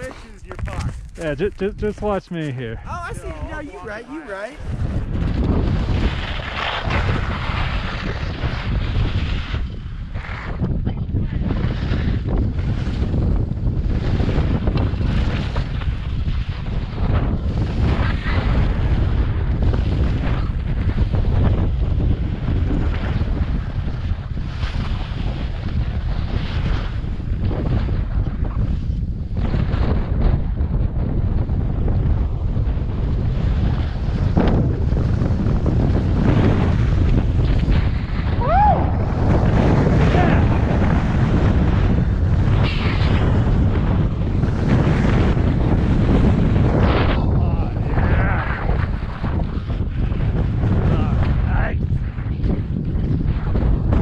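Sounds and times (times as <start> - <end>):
skis scraping on snow: 0.0 - 10.6, 22.8 - 27.0, 39.1 - 47.1
wind buffeting microphone: 0.0 - 54.0.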